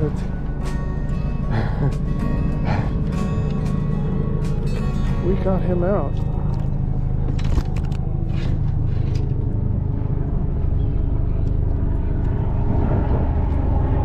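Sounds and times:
steady low rumble: 0.0 - 14.0.

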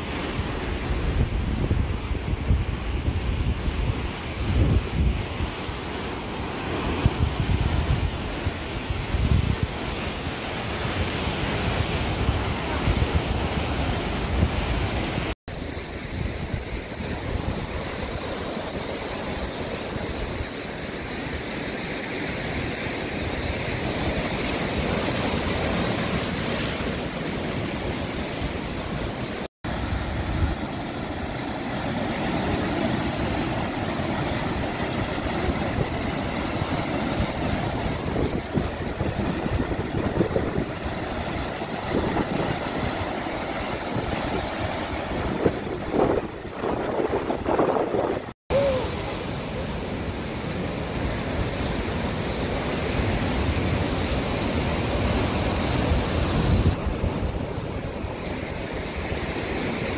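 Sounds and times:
wind on microphone: 0.0 - 21.8, 22.5 - 59.9
surf breaking on pebble shore: 0.0 - 59.9.

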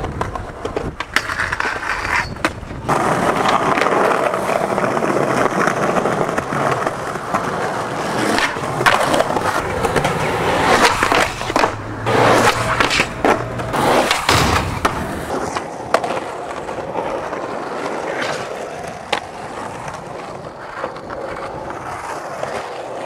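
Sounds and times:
skateboard clacks: 0.0 - 23.0
skateboard wheels rolling on concrete: 0.0 - 23.0.

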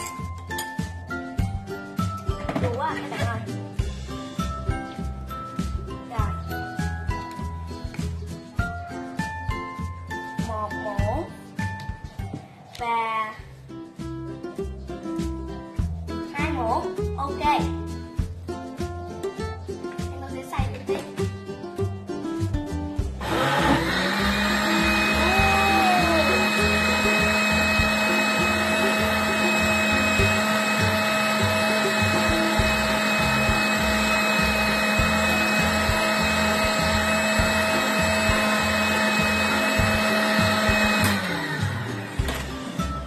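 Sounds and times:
blender motor whining: 23.2 - 43.0.

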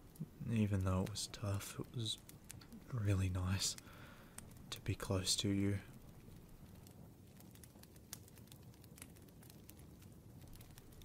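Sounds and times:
rain hissing: 0.0 - 11.0
wood fire crackling: 0.0 - 11.0.

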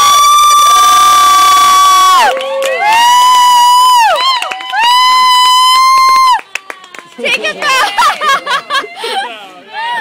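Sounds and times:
young people screaming and cheering: 0.0 - 10.0.

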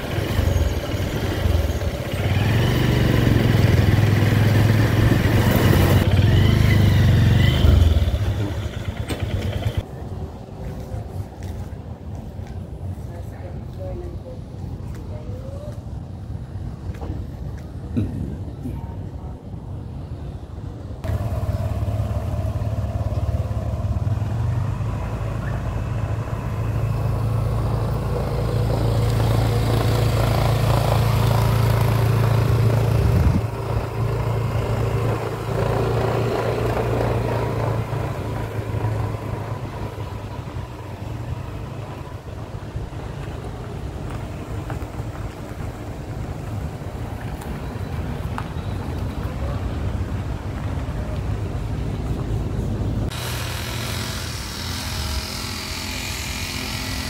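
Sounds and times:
vehicle engine humming: 0.0 - 19.3, 19.9 - 57.0.

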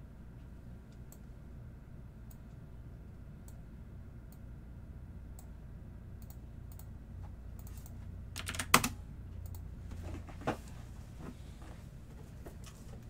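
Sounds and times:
steady low hum: 0.0 - 13.0
computer keyboard typing: 7.6 - 9.6.

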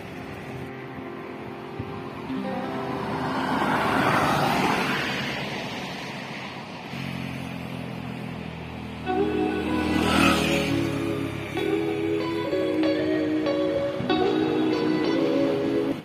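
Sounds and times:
car passing close by: 0.0 - 16.0
background music: 0.9 - 4.2, 9.1 - 16.0.

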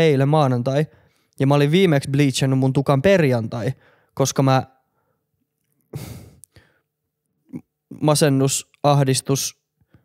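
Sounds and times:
man sighing: 6.0 - 6.7.

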